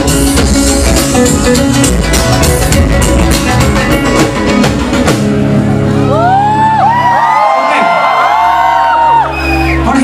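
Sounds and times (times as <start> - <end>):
crowd whoops and shouts: 5.9 - 10.0.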